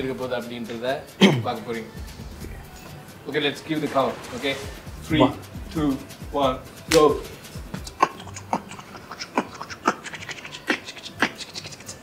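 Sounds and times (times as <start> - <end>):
beatboxing: 4.9 - 12.0.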